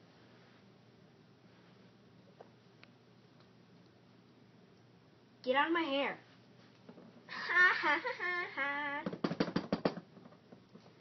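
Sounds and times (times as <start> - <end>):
plastic toys knocking: 9.0 - 10.9.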